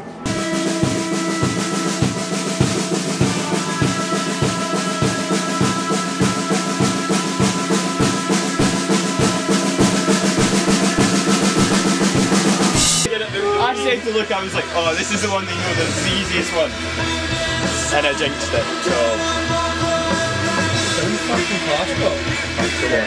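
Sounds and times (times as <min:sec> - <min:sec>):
bass guitar: 0:00.0 - 0:23.0
drum kit beat: 0:00.0 - 0:23.0
rock band playing: 0:00.0 - 0:23.0.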